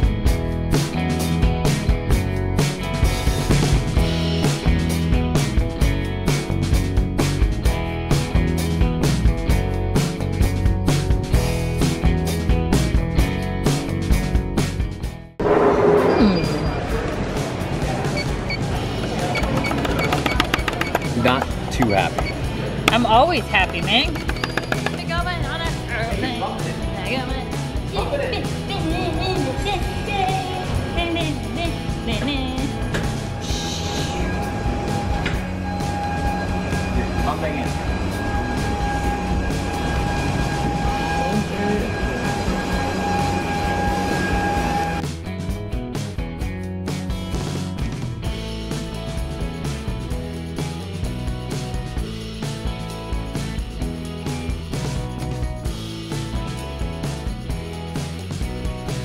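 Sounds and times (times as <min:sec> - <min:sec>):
music: 0:00.0 - 0:15.6, 0:16.2 - 0:59.0
airport crowd hubbub: 0:16.4 - 0:25.2
fingers tapping plastic buttons: 0:19.1 - 0:23.0, 0:23.6 - 0:25.1
short high beeps: 0:24.1 - 0:25.0
aircraft low rumble: 0:28.9 - 0:45.0
high whine: 0:29.4 - 0:45.0.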